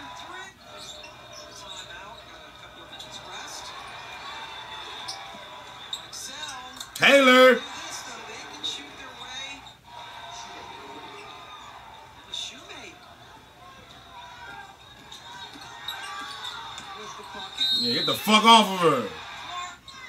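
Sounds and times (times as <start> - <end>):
faint commentators' voices: 0.0 - 20.0.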